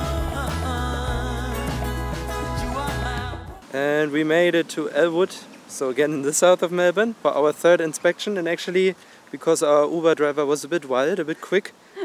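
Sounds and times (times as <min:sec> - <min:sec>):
steady bass line: 0:00.0 - 0:03.6
song with singing: 0:00.0 - 0:03.8.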